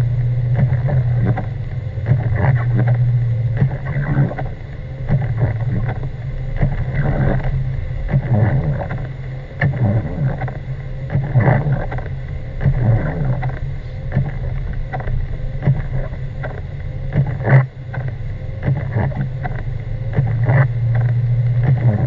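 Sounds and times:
car engine and road drone: 0.0 - 22.0.

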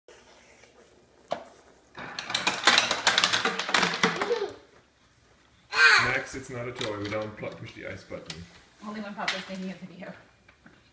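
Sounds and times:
ice cubes clattering from chute: 2.0 - 4.3.

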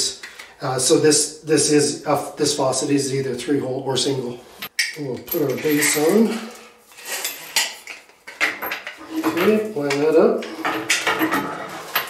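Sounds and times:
metallic clinks and knocks: 4.8 - 12.0.

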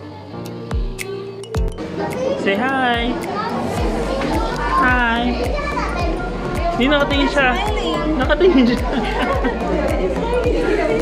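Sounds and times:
background music with steady beat: 0.0 - 11.0
children chattering: 0.0 - 11.0.

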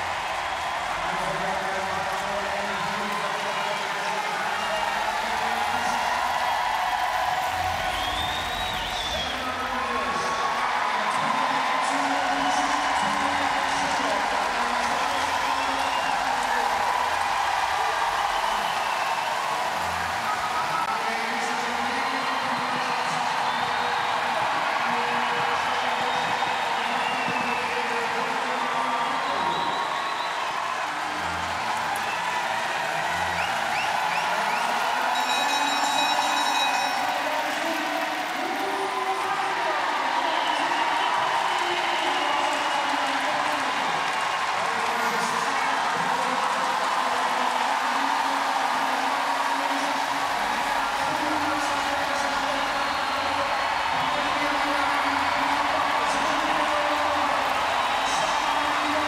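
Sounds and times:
music: 0.0 - 28.2, 28.8 - 59.0
arena crowd cheering and shouting: 0.0 - 59.0.

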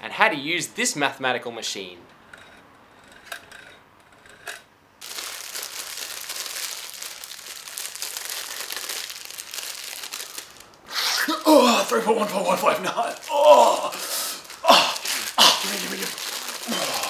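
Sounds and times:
plastic bag crinkling: 5.0 - 10.8, 11.7 - 17.0.

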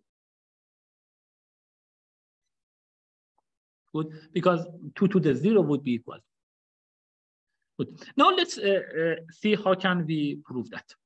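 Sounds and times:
person speaking: 7.8 - 11.0.

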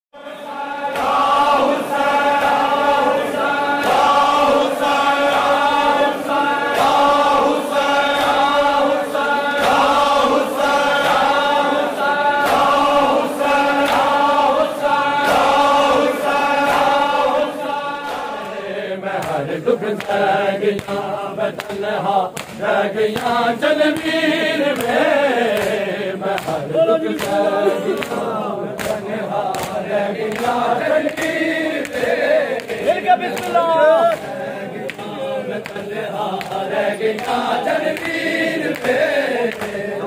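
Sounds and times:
voices chanting in unison: 0.2 - 40.0.

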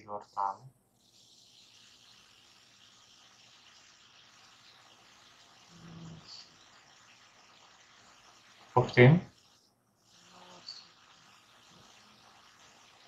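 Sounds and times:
faint room tone hiss: 0.0 - 13.0.

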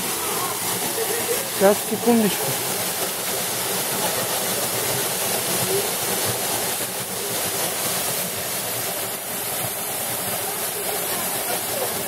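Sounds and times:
waterfall rushing and splashing: 0.0 - 12.0.

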